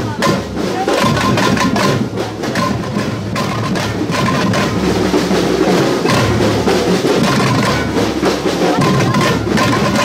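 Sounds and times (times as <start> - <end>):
low steady drum beat: 0.0 - 10.0
small frame drums struck rapidly: 0.0 - 10.0.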